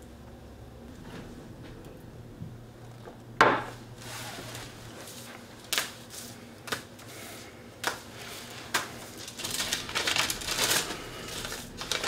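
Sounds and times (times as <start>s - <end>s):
paper rustling: 8.2s - 12.0s.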